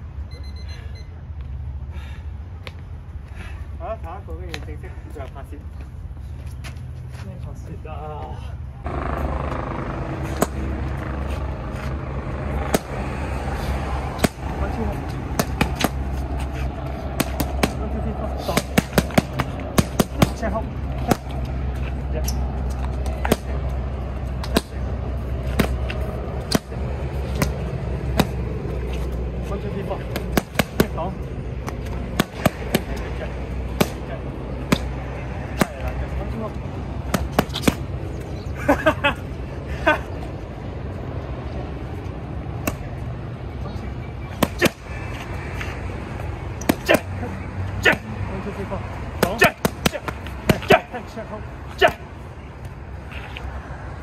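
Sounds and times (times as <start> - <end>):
steady low rumble: 1.1 - 46.6
gloves smacking punch paddles: 17.1 - 17.8, 34.6 - 34.9.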